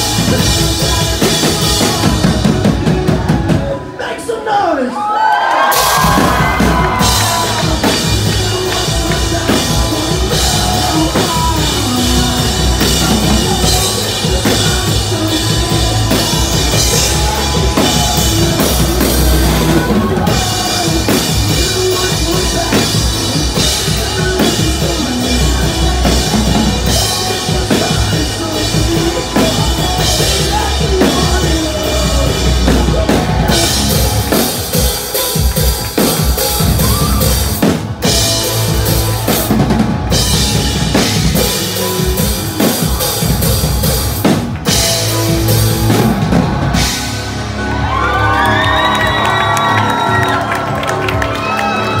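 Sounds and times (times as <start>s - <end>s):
pounding drum kit: 0.0s - 4.0s, 5.6s - 52.0s
live rock band playing: 0.0s - 4.6s, 5.6s - 52.0s.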